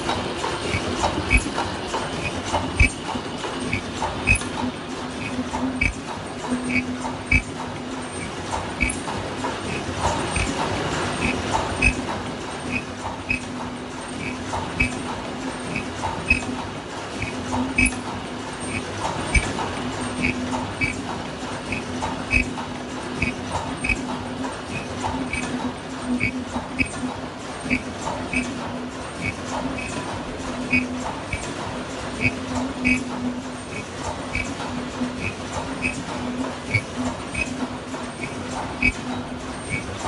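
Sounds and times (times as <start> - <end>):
machine knocks: 0.0 - 40.0
machine mechanical hum: 0.0 - 40.0
high-pitched machine chirps: 3.7 - 4.5, 6.6 - 7.5, 8.2 - 9.1, 11.2 - 12.0, 12.7 - 13.5, 14.2 - 15.0, 17.2 - 18.0, 20.2 - 21.0, 21.7 - 22.5, 26.1 - 26.9, 32.2 - 33.1, 36.7 - 37.6.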